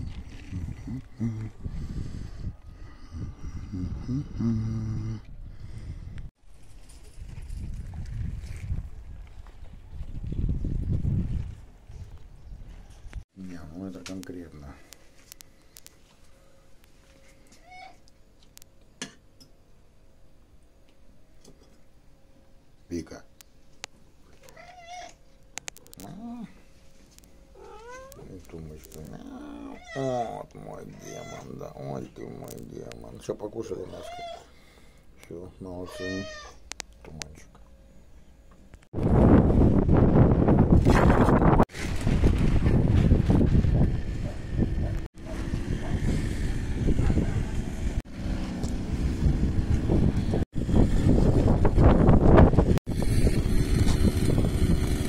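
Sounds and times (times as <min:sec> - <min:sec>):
wind buffeting microphone: 0:00.0 - 0:04.4, 0:07.0 - 0:13.2, 0:39.0 - 0:48.0, 0:48.7 - 0:55.0
cat meowing: 0:17.6 - 0:18.0, 0:24.4 - 0:25.2, 0:27.6 - 0:28.3, 0:29.1 - 0:31.6, 0:33.8 - 0:34.5, 0:35.9 - 0:36.6.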